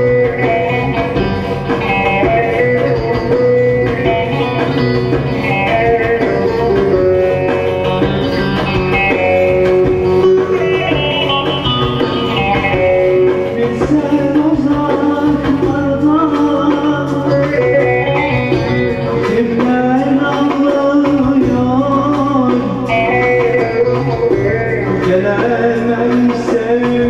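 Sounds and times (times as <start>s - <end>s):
bass and rhythm backing: 0.0s - 27.0s.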